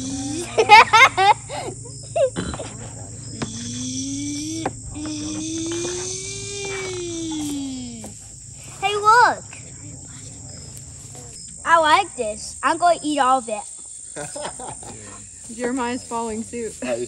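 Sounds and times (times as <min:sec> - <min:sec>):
voice drawn-out rising tone: 0:00.0 - 0:01.0, 0:02.1 - 0:11.8
crickets chirping: 0:00.0 - 0:17.0.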